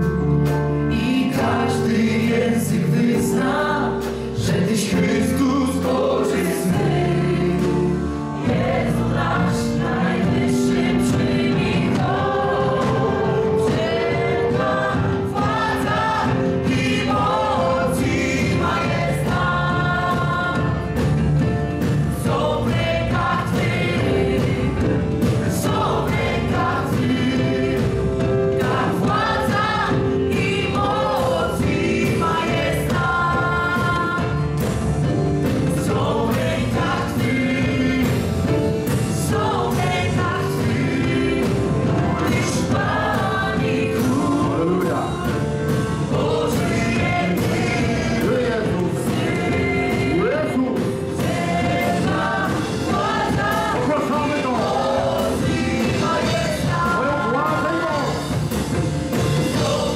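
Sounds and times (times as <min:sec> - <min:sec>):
many voices singing: 0:00.0 - 0:59.9
worship band playing: 0:00.0 - 0:59.9.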